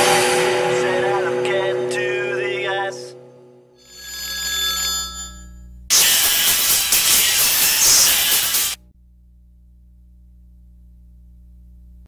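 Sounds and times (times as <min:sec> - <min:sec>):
ringing bell-like tone: 0:00.0 - 0:05.7
low hum: 0:00.0 - 0:05.9, 0:08.8 - 0:12.0
loud static hiss: 0:05.9 - 0:08.8.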